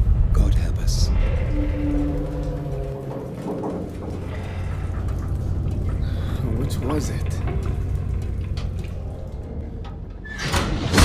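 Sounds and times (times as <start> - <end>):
deep steady rumble: 0.0 - 10.3.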